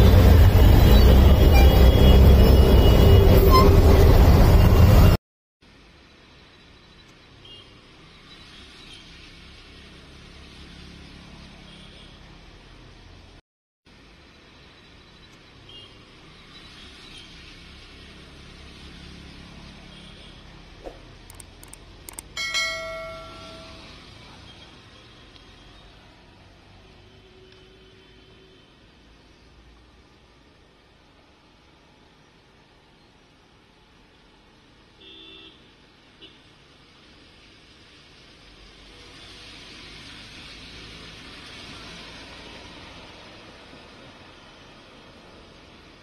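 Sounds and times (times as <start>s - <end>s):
vehicle engines rumbling: 0.0s - 5.2s, 14.0s - 32.7s
soft clicks: 21.3s - 22.4s
bell chime: 22.1s - 24.0s.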